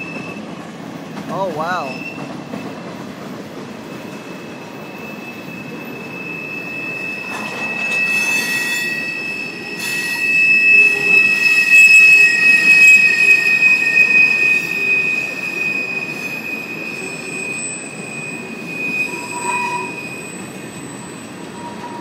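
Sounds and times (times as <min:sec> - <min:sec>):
rumble of rolling train cars: 0:00.0 - 0:22.0
train wheels squealing on rails: 0:00.0 - 0:22.0.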